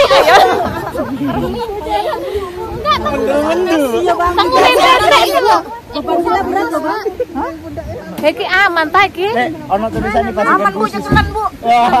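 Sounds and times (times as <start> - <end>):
women chattering: 0.0 - 12.0.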